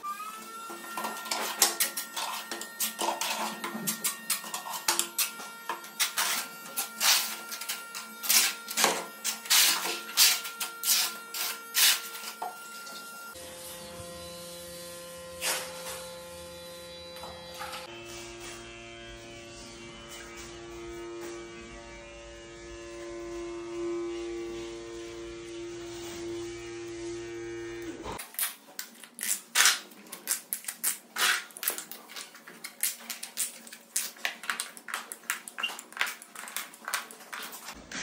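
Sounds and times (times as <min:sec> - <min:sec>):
tile vibrator buzzing: 0:00.0 - 0:28.2.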